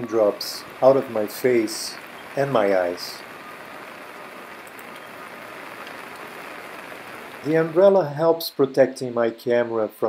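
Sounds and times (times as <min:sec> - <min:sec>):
steady rain hiss: 0:00.0 - 0:10.0.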